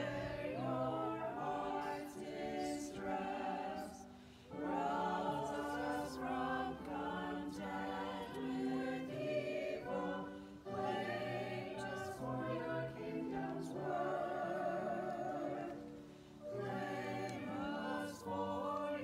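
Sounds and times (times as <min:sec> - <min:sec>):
group singing a hymn: 0:00.0 - 0:19.0.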